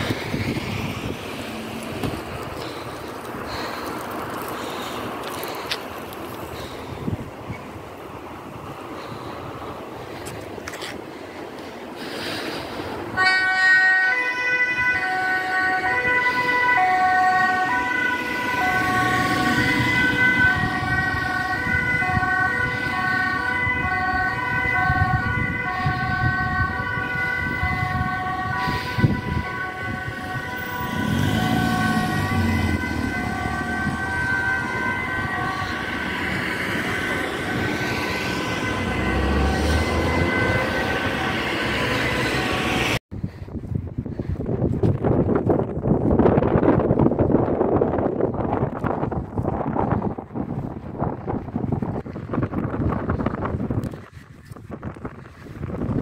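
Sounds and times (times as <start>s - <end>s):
vehicle passing rumble: 0.0s - 11.2s, 15.7s - 43.0s
two-tone emergency siren: 13.1s - 43.0s.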